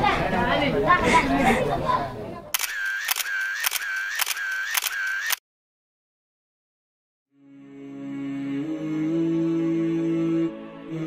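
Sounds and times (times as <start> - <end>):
camera shutter clicks: 2.6 - 5.4.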